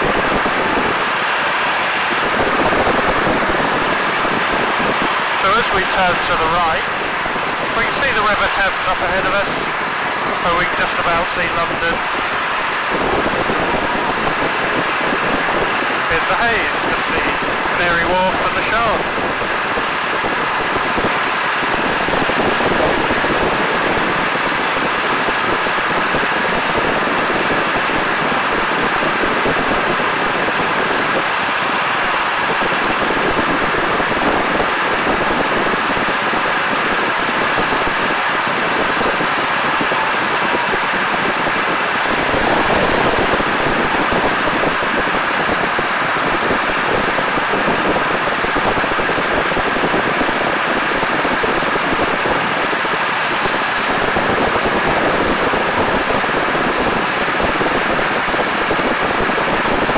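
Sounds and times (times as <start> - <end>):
biplane engine drone: 0.0 - 59.9
wind rushing over camera: 0.0 - 59.9.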